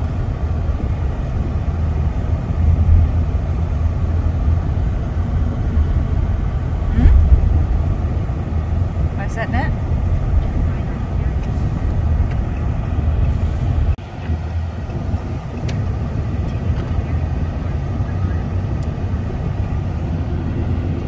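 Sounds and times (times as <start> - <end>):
car cabin road and engine rumble: 0.0 - 21.0.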